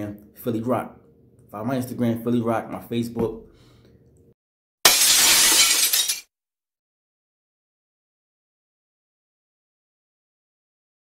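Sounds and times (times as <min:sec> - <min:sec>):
glass shattering: 0:04.9 - 0:06.3.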